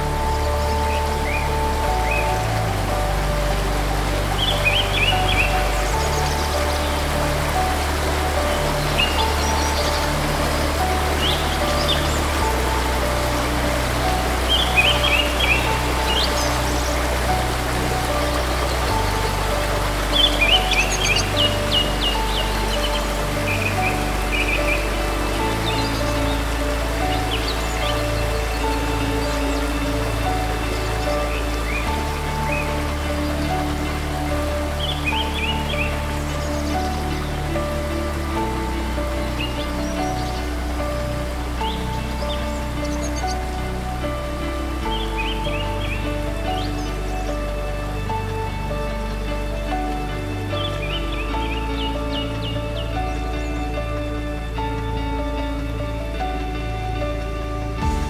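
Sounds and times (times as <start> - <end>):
birds chirping: 0.0 - 58.0
running water hiss: 0.0 - 58.0
soft instrumental music: 0.0 - 58.0.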